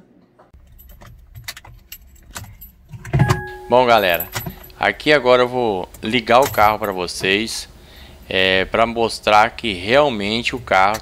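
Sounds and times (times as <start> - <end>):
car keys jangling: 0.6 - 5.0, 5.8 - 7.5
low steady hum: 1.9 - 11.0.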